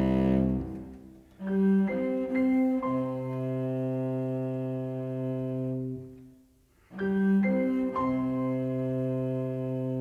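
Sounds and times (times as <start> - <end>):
cello and piano low chord: 0.0 - 6.3, 6.9 - 10.0.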